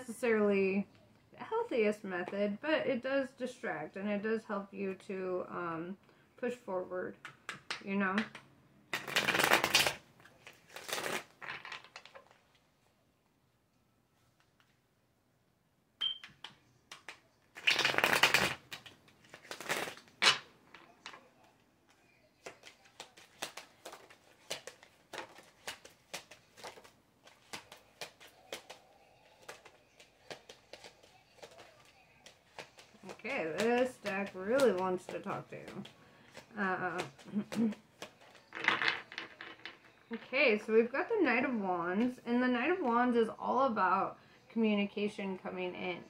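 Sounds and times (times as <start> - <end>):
cards being shuffled: 7.6 - 12.4, 16.2 - 21.2, 22.4 - 40.2.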